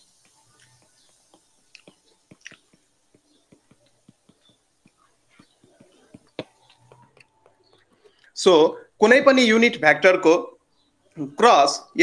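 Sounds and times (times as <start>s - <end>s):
stylus tapping tablet screen: 0.0s - 8.4s.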